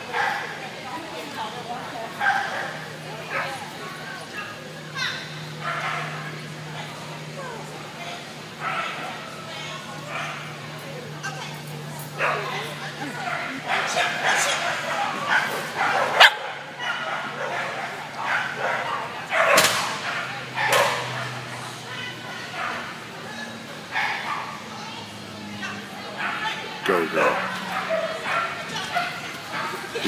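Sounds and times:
people's voices: 0:00.0 - 0:30.0
dog barking in sharp bursts: 0:15.3 - 0:21.4.

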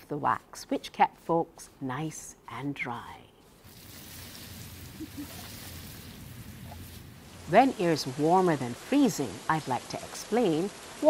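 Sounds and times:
falling water hiss: 0:03.5 - 0:11.0.

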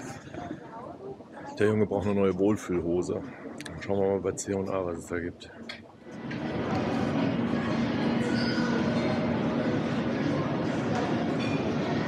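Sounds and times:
shopping mall din: 0:06.1 - 0:12.0.

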